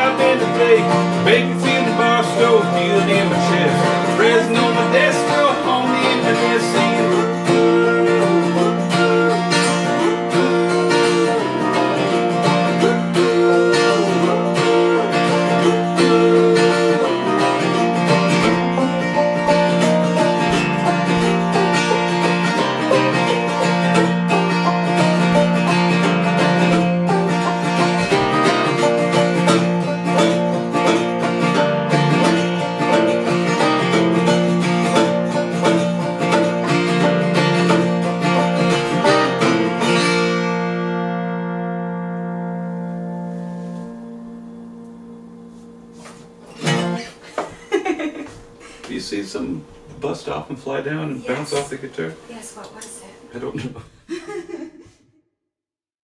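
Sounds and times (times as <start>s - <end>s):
acoustic guitar and banjo playing: 0.0s - 47.6s.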